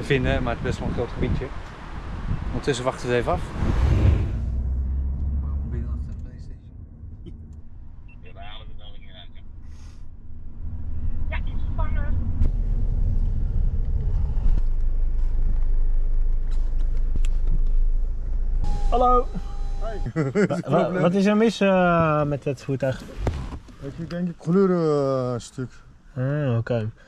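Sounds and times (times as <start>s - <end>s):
car rumble from inside: 0.0s - 20.2s.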